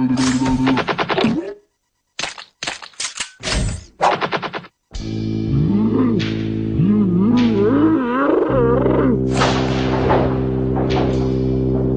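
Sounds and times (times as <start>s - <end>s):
background music chords: 5.0s - 11.9s.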